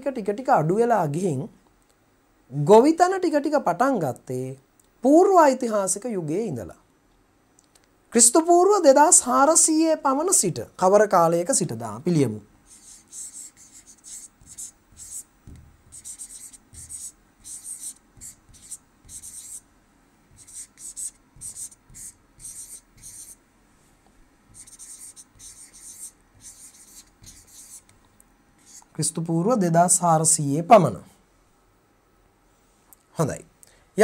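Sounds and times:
marker writing on a board: 12.7s - 19.6s, 20.3s - 23.4s, 24.5s - 27.9s, 28.6s - 28.9s.

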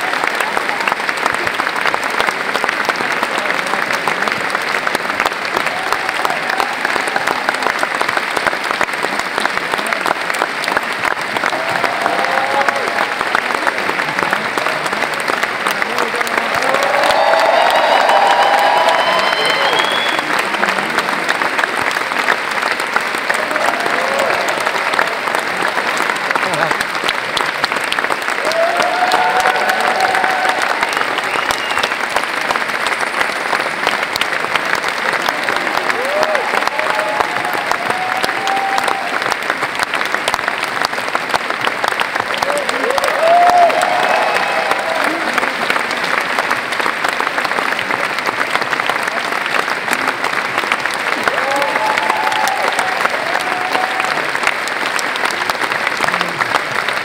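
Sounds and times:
audience clapping: 0.0s - 57.0s.

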